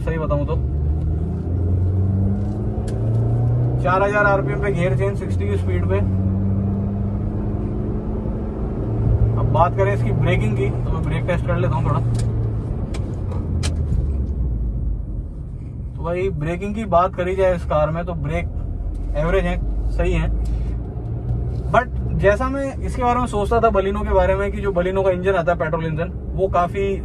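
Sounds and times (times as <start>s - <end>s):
road noise: 0.0s - 27.0s
car engine accelerating in cabin: 0.1s - 15.2s, 18.1s - 24.7s.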